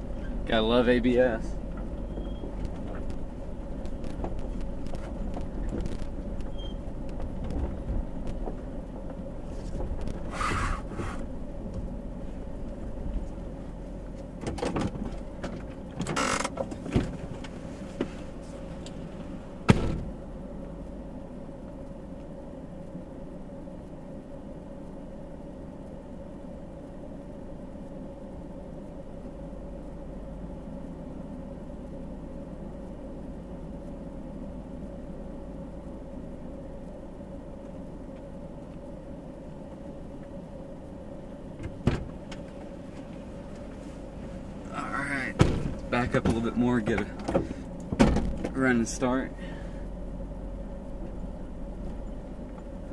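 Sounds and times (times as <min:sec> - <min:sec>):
pickup engine idling: 0:00.0 - 0:52.9
knocks and thumps: 0:07.1 - 0:08.7, 0:41.6 - 0:42.4, 0:45.3 - 0:46.5, 0:47.2 - 0:48.6.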